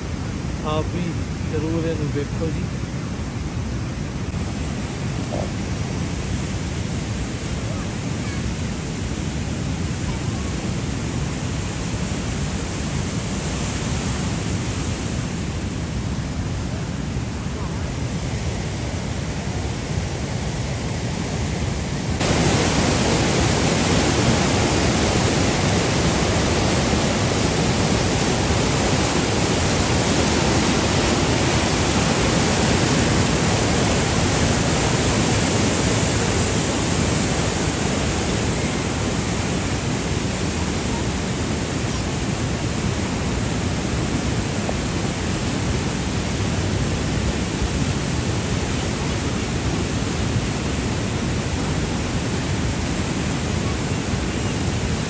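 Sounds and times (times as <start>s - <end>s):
river rapids rushing over boulders: 0.0s - 55.0s.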